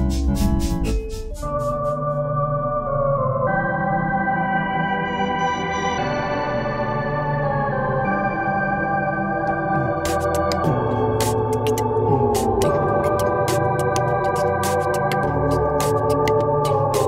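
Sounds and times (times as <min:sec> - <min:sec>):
synthesizer sustained chords: 0:00.0 - 0:17.0.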